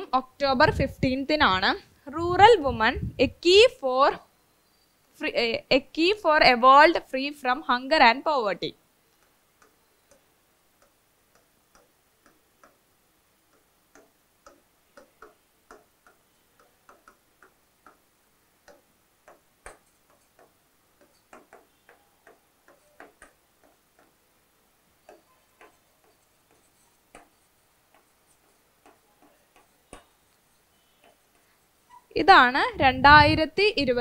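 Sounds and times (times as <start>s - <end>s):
pen tapping on whiteboard screen: 9.2s - 12.9s, 13.5s - 24.4s, 25.0s - 31.6s.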